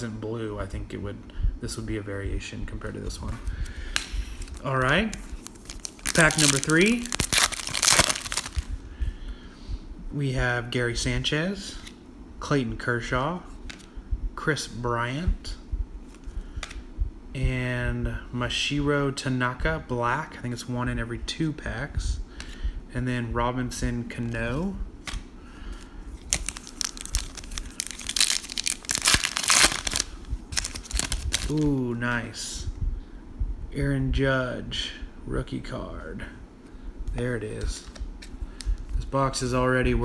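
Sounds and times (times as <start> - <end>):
plastic wrapper crinkling: 4.4 - 8.7, 26.2 - 31.7.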